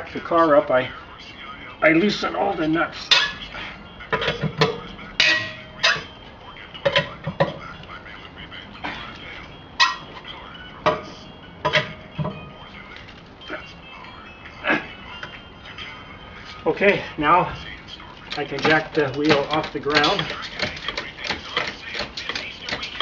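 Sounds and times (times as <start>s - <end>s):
lug wrench clanking on lug nuts: 9.8s - 10.2s.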